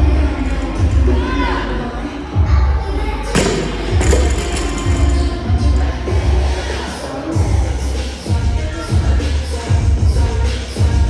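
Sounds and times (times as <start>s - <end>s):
music with heavy bass beat: 7.4s - 11.0s.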